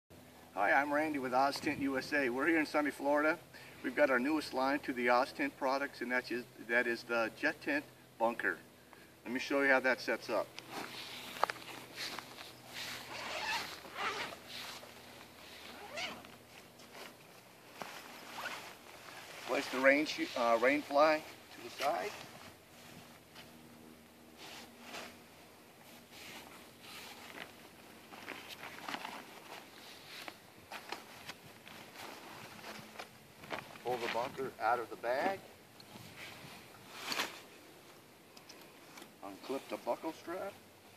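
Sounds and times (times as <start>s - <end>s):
fabric rustling and swishing: 10.7s - 23.6s, 24.2s - 34.3s
zipper pulled open: 10.8s - 17.1s, 18.0s - 20.9s.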